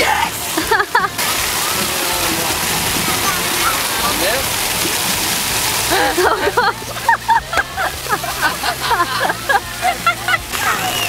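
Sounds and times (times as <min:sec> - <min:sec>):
faint voices: 0:00.0 - 0:11.0
fountain water splashing on pavement: 0:00.0 - 0:11.0.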